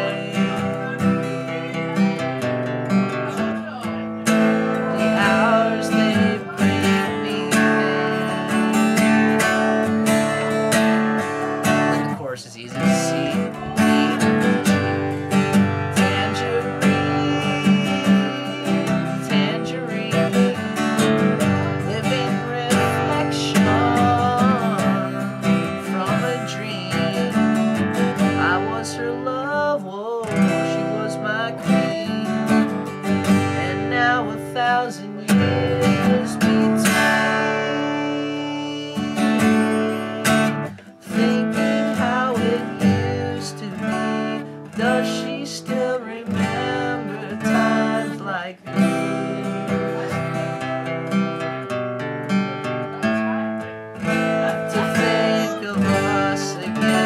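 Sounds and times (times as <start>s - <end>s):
acoustic guitar strummed: 0.0s - 57.0s
man singing: 0.0s - 57.0s.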